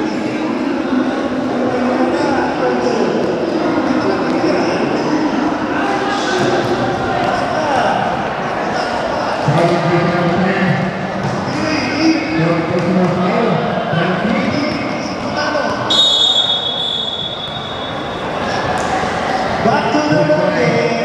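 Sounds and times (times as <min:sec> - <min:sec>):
overlapping voices in a hall: 0:00.0 - 0:21.0
high steady tone: 0:15.9 - 0:18.4.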